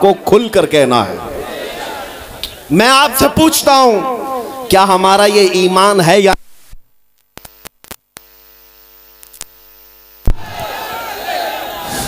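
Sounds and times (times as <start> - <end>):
electrical mains hum: 0.0 - 11.8
microphone crackling clicks: 6.3 - 10.7.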